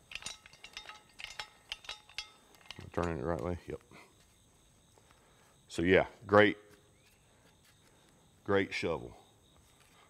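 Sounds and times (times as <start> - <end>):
metal shovel parts clinking: 0.0 - 3.6.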